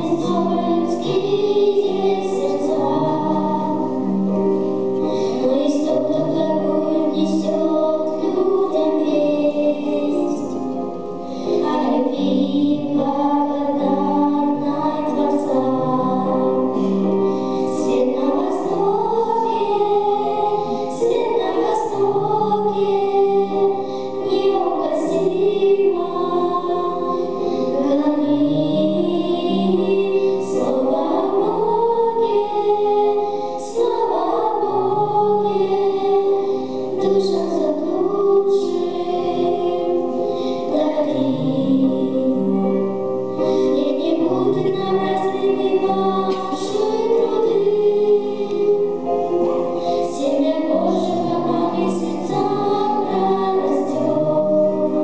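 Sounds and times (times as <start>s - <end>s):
girls singing into microphones: 0.0s - 55.0s.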